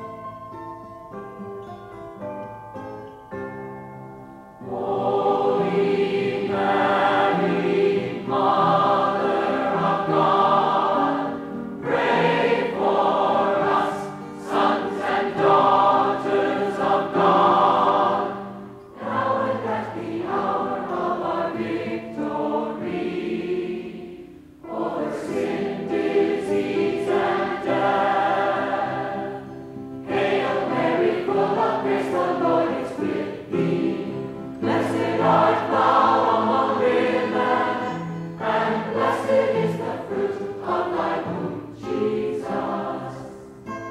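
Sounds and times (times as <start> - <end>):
group of voices singing: 4.7 - 43.5.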